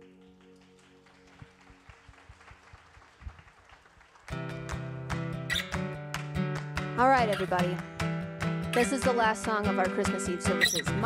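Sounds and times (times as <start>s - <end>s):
keyboard chords: 0.0s - 2.1s
keyboard pad: 0.0s - 3.0s
acoustic guitar strumming: 4.3s - 11.0s.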